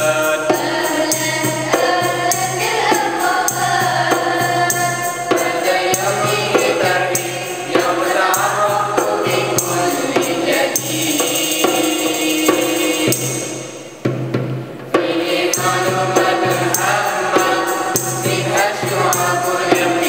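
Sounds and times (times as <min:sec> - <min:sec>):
frame drum beats: 0:00.0 - 0:20.0
young voices singing together: 0:00.0 - 0:20.0.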